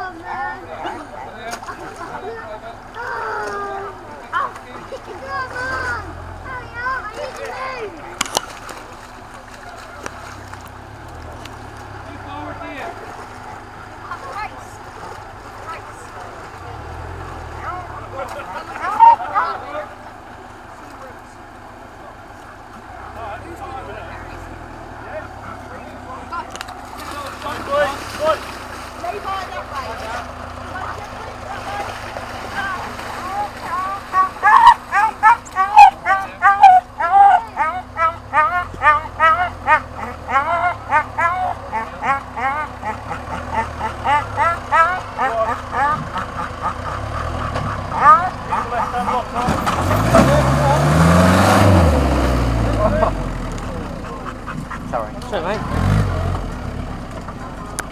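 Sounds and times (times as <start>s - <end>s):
engine rumbling and revving: 0.0s - 57.9s
loud voices: 0.0s - 57.9s.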